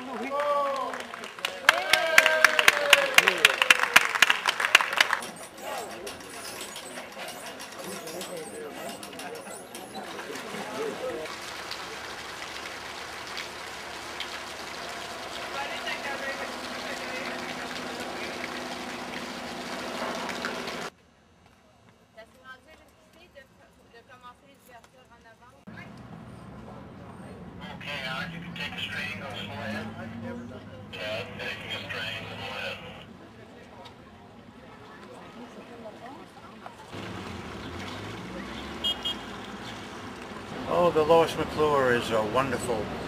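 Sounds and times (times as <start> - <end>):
crowd clapping: 0.0 - 6.4, 10.0 - 20.9
voices calling out: 0.0 - 20.9, 26.7 - 33.1
water rushing: 10.0 - 20.9.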